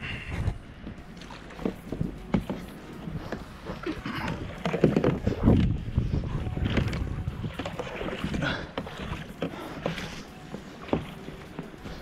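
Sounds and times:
paddle splashing in water: 1.0s - 12.0s.

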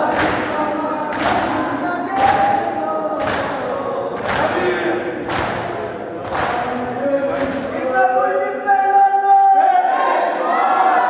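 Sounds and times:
crowd of men chanting: 0.0s - 11.0s.

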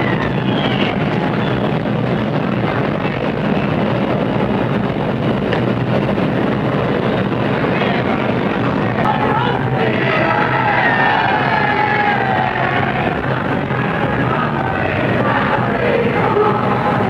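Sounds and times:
street crowd and traffic: 0.0s - 17.0s.

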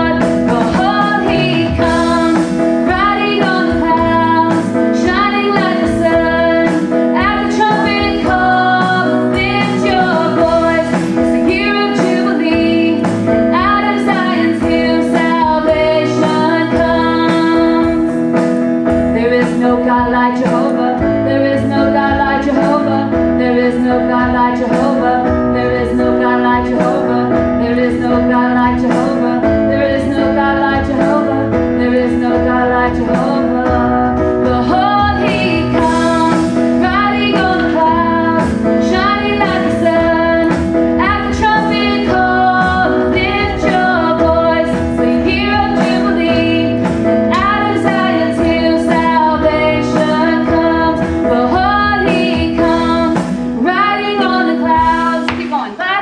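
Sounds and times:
drums: 0.0s - 56.0s
guitar: 0.0s - 56.0s
keyboard: 0.0s - 56.0s
woman singing: 0.0s - 56.0s.

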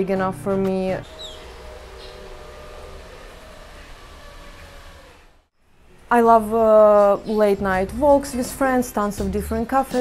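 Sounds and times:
high falling chirp: 1.0s - 5.3s.

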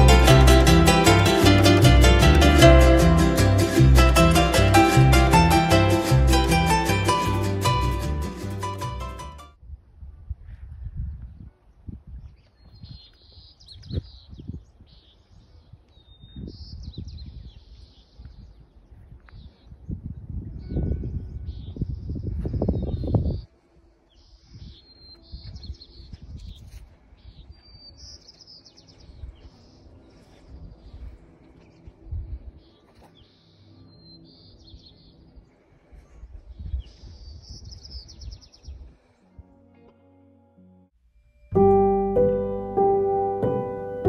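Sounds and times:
songbird singing: 24.1s - 38.8s.

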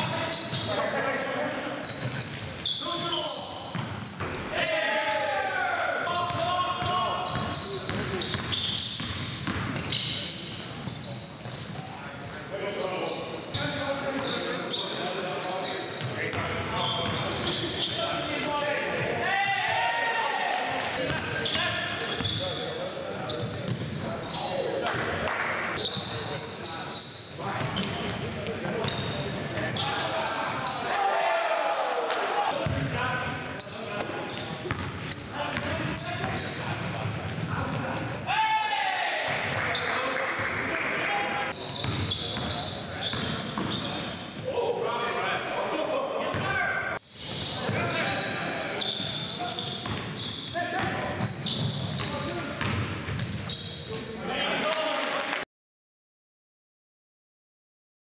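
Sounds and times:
echoing shouts: 4.4s - 7.8s, 18.0s - 21.9s, 29.6s - 33.2s, 37.5s - 41.6s.

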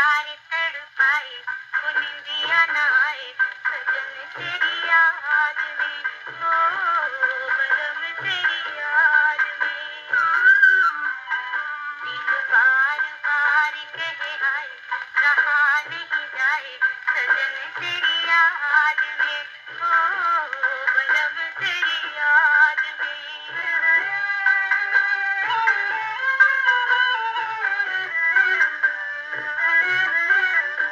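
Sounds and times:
song on gramophone record: 0.0s - 30.9s.

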